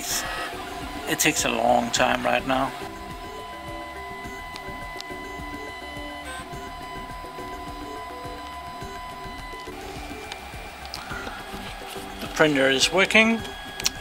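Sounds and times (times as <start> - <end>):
steady high tone: 0.0 - 14.0
stepper motors whining: 0.0 - 14.0.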